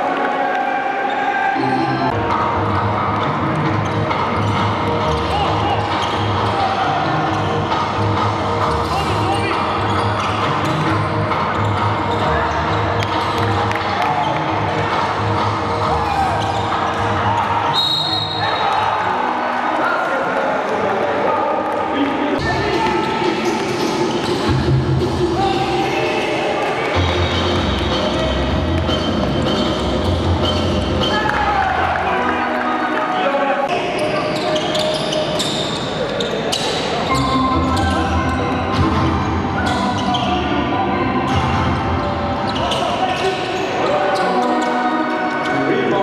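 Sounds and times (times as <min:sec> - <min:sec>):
players and crowd voices: 0:00.0 - 0:46.0
shrill referee whistle: 0:17.7 - 0:18.8.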